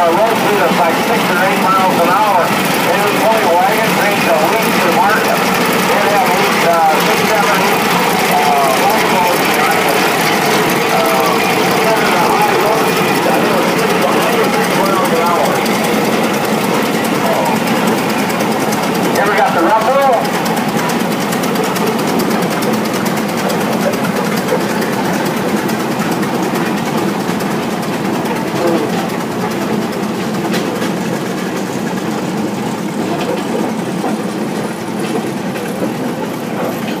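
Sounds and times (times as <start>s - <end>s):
tractor engines running: 0.0s - 37.0s
voices: 0.0s - 37.0s.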